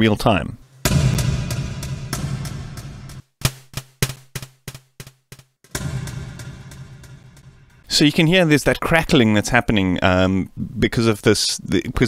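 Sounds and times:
synthesized snare hits with reverb: 0.8s - 8.0s.

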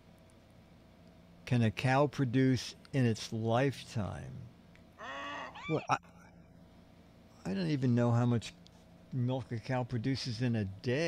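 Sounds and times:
low steady background noise: 0.0s - 11.0s
man speaking: 9.2s - 11.0s.

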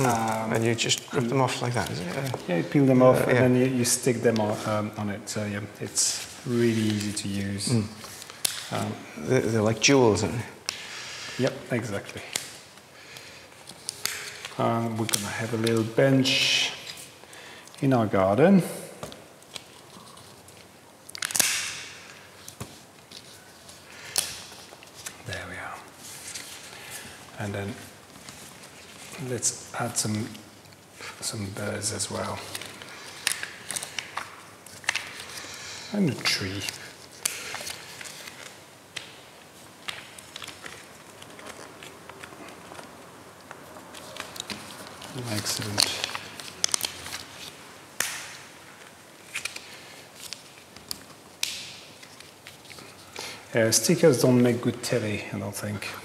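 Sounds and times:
sticker peeling rustle: 0.0s - 10.8s, 19.0s - 55.0s.

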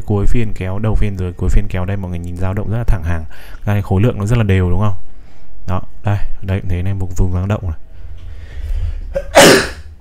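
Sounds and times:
man sneezing: 9.2s - 9.9s.

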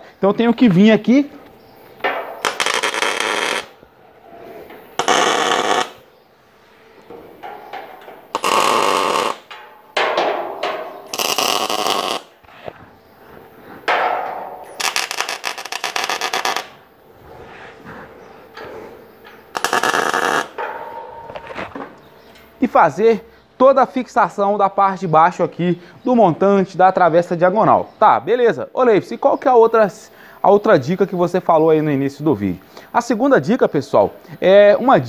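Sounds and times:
crackling arc welding: 2.4s - 3.8s, 5.0s - 6.1s, 8.3s - 9.6s, 11.1s - 12.4s, 14.6s - 16.8s, 19.5s - 20.6s.

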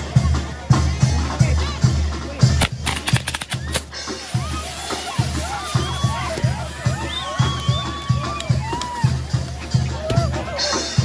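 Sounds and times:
banda music with bass drum beat: 0.0s - 11.0s
firework sharp cracks: 2.6s - 5.8s.

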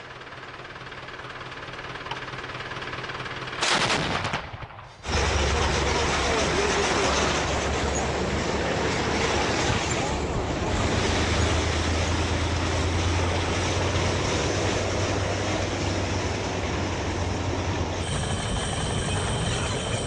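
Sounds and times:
tracked vehicles rumbling: 0.0s - 20.0s
heavy gun firing rapidly: 3.6s - 5.9s.

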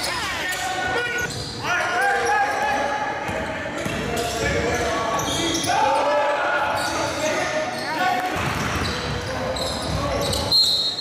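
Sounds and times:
voices of players and spectators: 0.0s - 11.0s.

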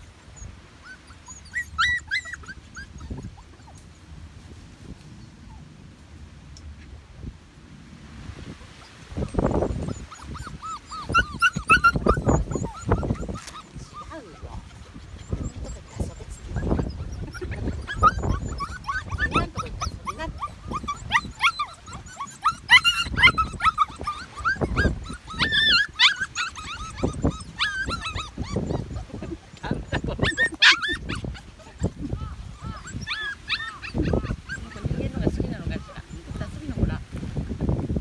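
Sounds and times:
puppies whining and yipping: 0.0s - 4.2s, 8.6s - 37.0s.

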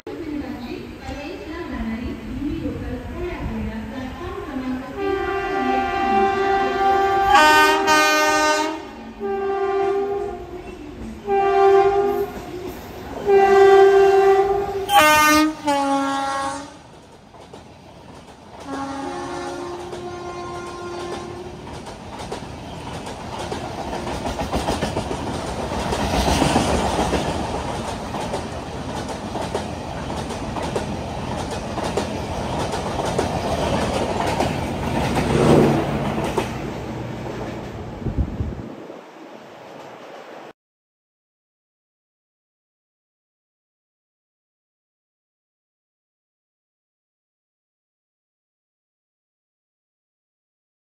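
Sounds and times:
train coaches rumbling past: 0.1s - 40.5s
train horn blasts: 5.0s - 16.8s, 18.6s - 21.6s.

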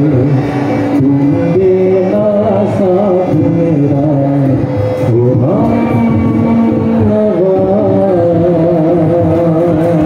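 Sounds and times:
guitar: 0.0s - 10.0s
harmonium: 0.0s - 10.0s
man singing held note: 0.0s - 10.0s
tabla: 0.0s - 10.0s.

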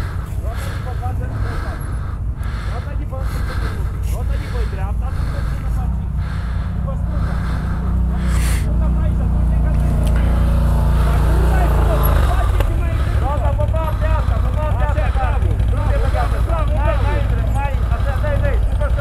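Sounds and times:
engine running under load: 0.0s - 19.0s.

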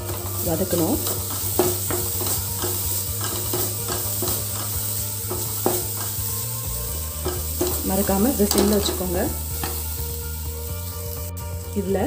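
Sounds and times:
spatula scraping metal pan: 0.0s - 11.1s
frying hiss: 0.0s - 12.0s.

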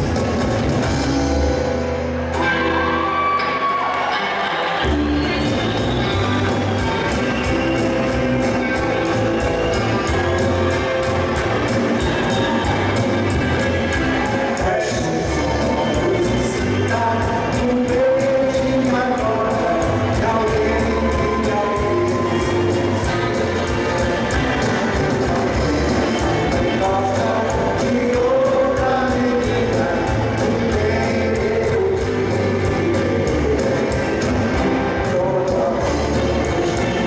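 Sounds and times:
rock band playing: 0.0s - 37.0s.

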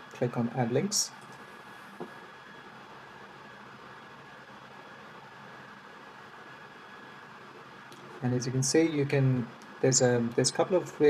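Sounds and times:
faint recording hiss: 0.0s - 11.0s.

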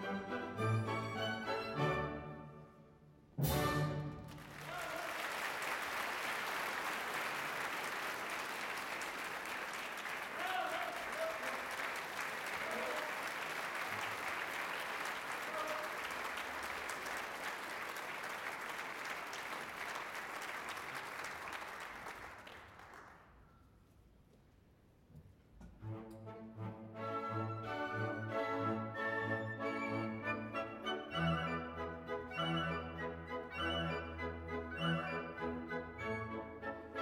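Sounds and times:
audience applauding: 4.1s - 23.4s.

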